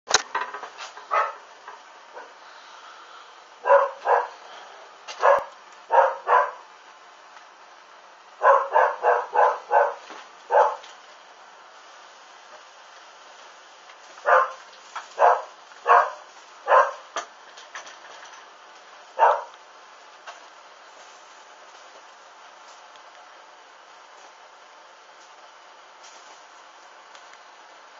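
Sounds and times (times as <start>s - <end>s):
dog barking: 1.1s - 1.5s, 2.1s - 2.4s, 3.6s - 4.4s, 5.2s - 6.7s, 8.4s - 10.9s, 14.2s - 17.1s, 19.2s - 19.6s.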